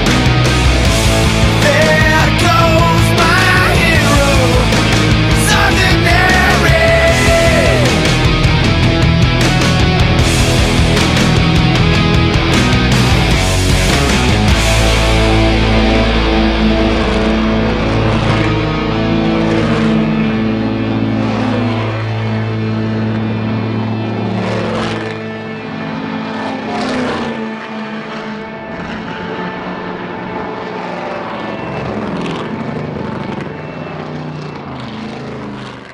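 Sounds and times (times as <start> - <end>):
heavy rock music: 0.0 - 35.6
race car engines passing: 0.0 - 35.9.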